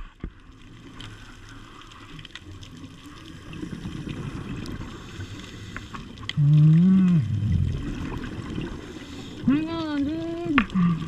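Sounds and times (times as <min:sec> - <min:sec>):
faint clicks: 0:00.2 - 0:07.2
underwater exhaust bubbles rumbling: 0:00.4 - 0:11.0.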